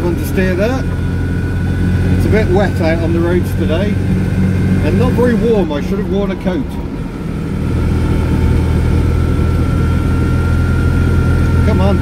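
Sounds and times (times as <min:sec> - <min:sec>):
engine drone: 0:00.0 - 0:12.0.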